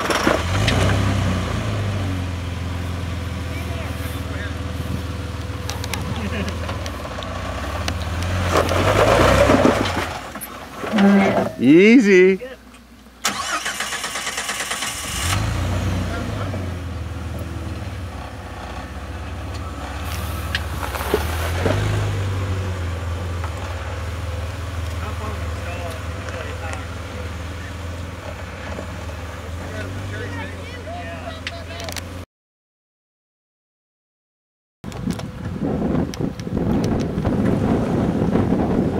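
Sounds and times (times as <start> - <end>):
car engine running: 0.0 - 32.2
starter motor cranking: 13.2 - 15.4.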